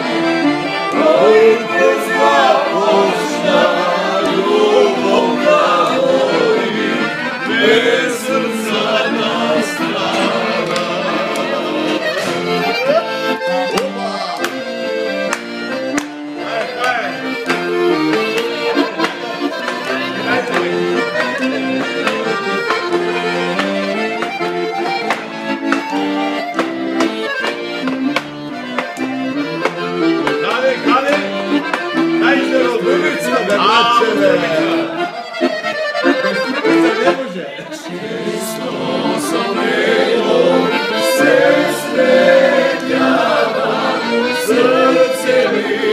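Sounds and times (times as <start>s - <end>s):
accordion folk tune: 0.0s - 45.9s
hand clapping: 0.6s - 6.2s, 9.6s - 37.0s.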